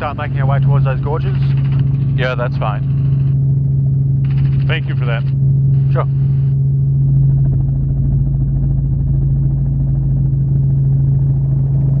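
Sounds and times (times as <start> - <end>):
helicopter engine and rotors: 0.0 - 12.0.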